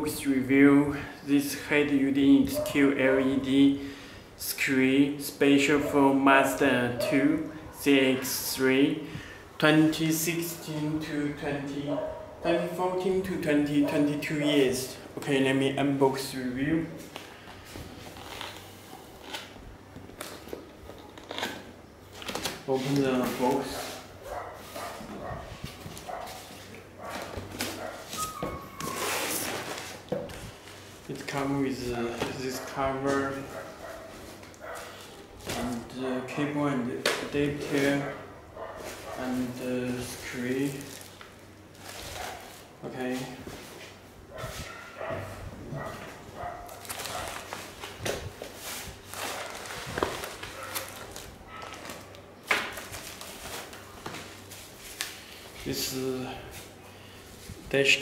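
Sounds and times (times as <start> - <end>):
rustling cardboard and plastic: 17.0 - 35.9, 38.7 - 57.7
short squeak: 28.2 - 29.4
loud plastic crackle: 46.7 - 55.4.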